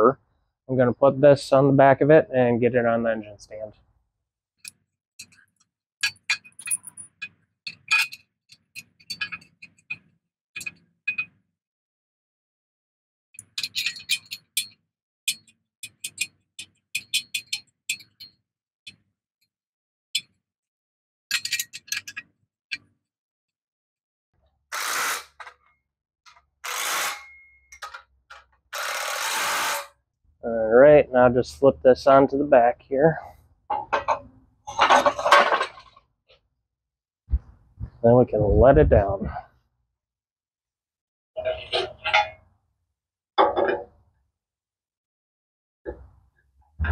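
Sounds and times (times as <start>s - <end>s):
metal clinks of bolts and tools: 4.6s - 11.4s, 13.4s - 18.4s, 21.3s - 22.9s, 27.2s - 28.1s.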